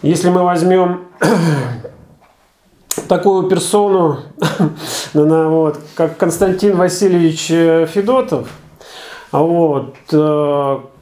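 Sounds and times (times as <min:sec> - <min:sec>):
man clearing his throat: 0:01.2 - 0:02.2
mouth click: 0:02.9 - 0:03.1.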